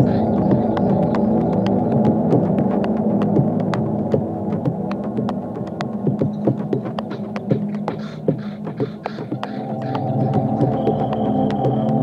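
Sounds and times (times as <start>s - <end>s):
low droning electronic tones: 0.0s - 12.0s.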